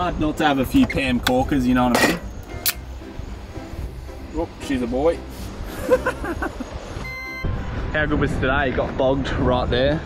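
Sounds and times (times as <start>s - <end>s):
drink can opening hiss: 1.2s - 2.9s.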